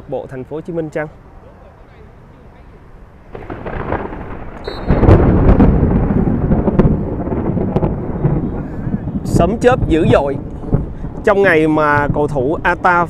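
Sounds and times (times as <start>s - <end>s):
thunder rumbling: 3.2s - 13.0s.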